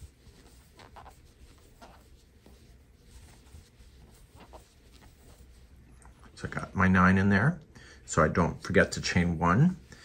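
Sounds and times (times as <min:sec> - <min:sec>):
yarn rustling over crochet hook: 0:00.0 - 0:07.5
soft brushes: 0:00.0 - 0:10.0.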